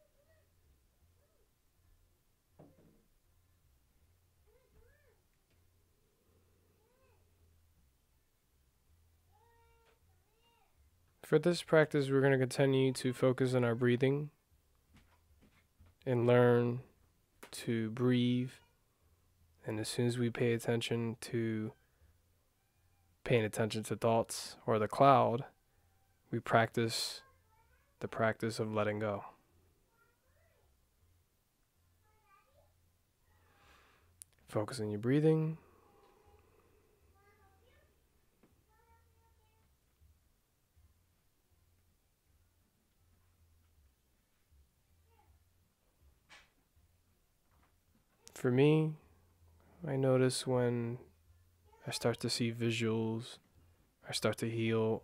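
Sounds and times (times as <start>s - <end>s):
cat meowing faintly: 4.4s - 5.2s.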